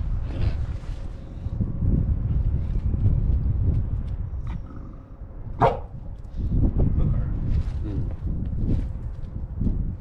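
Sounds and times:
dog barking: 0:05.6 - 0:06.0.

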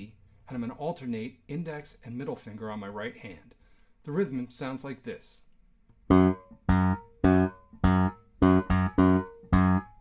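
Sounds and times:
electric bass guitar notes: 0:06.0 - 0:10.0.

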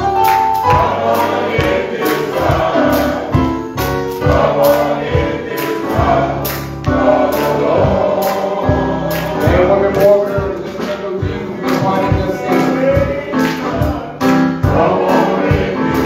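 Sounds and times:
drums keeping steady beat: 0:00.0 - 0:16.0
keyboard: 0:00.0 - 0:16.0
men's choir singing: 0:00.0 - 0:16.0.

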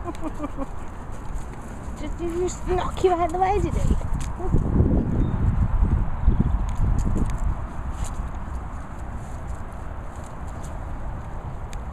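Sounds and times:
wind rumble on microphone: 0:00.0 - 0:11.9.

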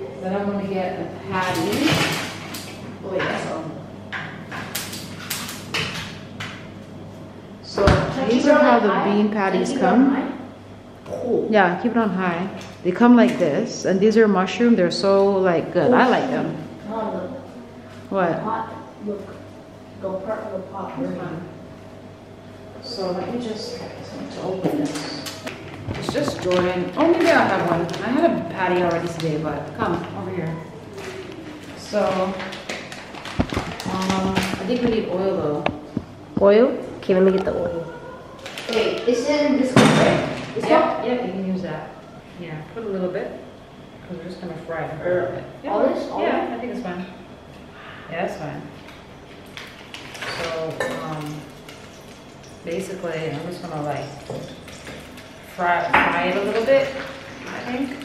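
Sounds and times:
steady low hum: 0:00.0 - 0:58.0
kitchen knocks and clatters: 0:01.3 - 0:03.4, 0:04.1 - 0:06.6, 0:24.6 - 0:29.2, 0:32.0 - 0:36.6, 0:49.4 - 0:52.7, 0:53.3 - 0:58.0
plastic bag crinkling and tearing: 0:30.9 - 0:35.1, 0:38.4 - 0:39.2.

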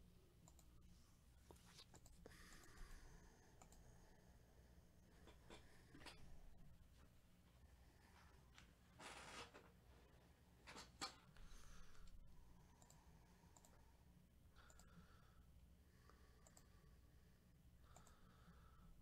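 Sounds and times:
low room hum: 0:00.0 - 0:19.0
faint clicks: 0:00.4 - 0:00.7, 0:03.6 - 0:03.9, 0:12.8 - 0:13.8, 0:14.6 - 0:15.0, 0:16.1 - 0:16.7, 0:17.8 - 0:18.4.

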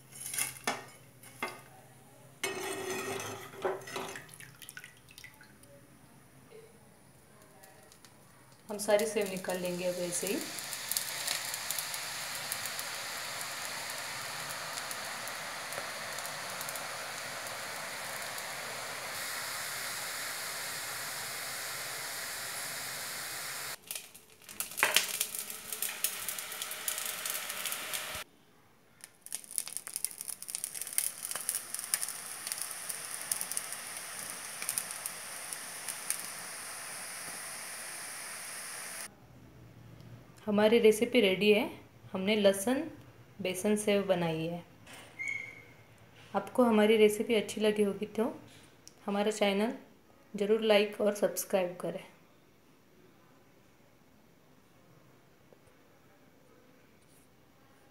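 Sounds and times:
dough deep-frying in oil: 0:08.7 - 0:28.2, 0:29.0 - 0:39.1
sharp popping oil: 0:08.7 - 0:28.2, 0:29.0 - 0:39.1.

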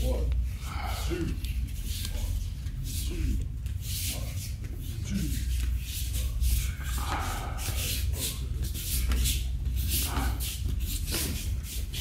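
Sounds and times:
steady low rumble: 0:00.0 - 0:12.0
bare feet shuffling on mats: 0:01.2 - 0:12.0.

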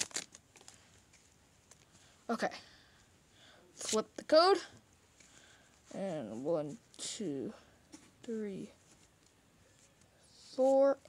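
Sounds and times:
foil wrapper crinkling: 0:00.0 - 0:00.8.

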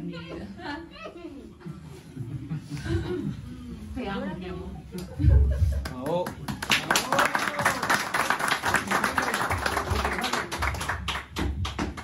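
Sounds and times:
people applauding: 0:05.8 - 0:12.0.

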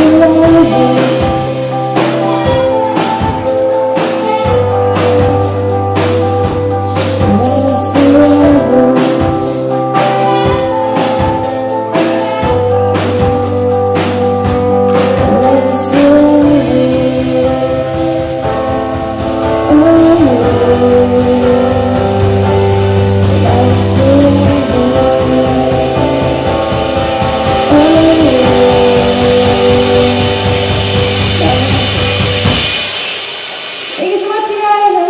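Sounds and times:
woman singing: 0:00.0 - 0:05.8, 0:06.9 - 0:13.7, 0:15.0 - 0:18.5, 0:19.5 - 0:26.8, 0:27.4 - 0:30.8, 0:31.4 - 0:32.2, 0:34.0 - 0:35.0
drum kit: 0:00.0 - 0:35.0
keyboard: 0:00.0 - 0:35.0
live band playing pop song: 0:00.0 - 0:35.0
cymbal crash: 0:16.6 - 0:35.0.

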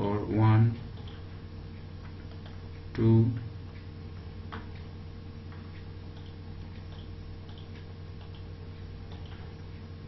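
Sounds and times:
steady low hum: 0:00.0 - 0:10.0
faint computer mouse clicks: 0:05.5 - 0:08.5.

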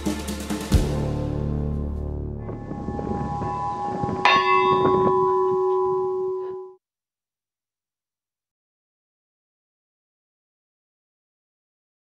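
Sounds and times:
church bell ringing: 0:02.5 - 0:06.8.

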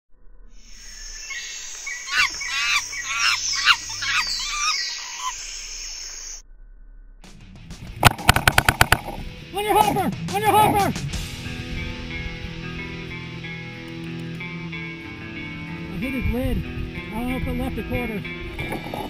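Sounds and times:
high repeated chirping calls: 0:00.6 - 0:06.4
music: 0:07.2 - 0:19.0
sharp cracks: 0:07.8 - 0:10.0.

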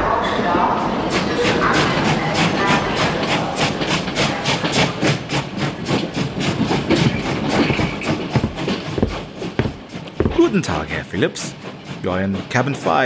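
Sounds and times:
train low rumble: 0:00.8 - 0:13.0
train wheels clicking on rail joints: 0:01.1 - 0:13.0.

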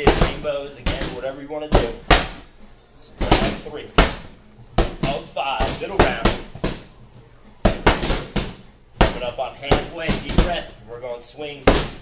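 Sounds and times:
slam ball bouncing on mat: 0:00.0 - 0:02.5, 0:03.2 - 0:06.9, 0:07.6 - 0:10.7, 0:11.7 - 0:12.0.

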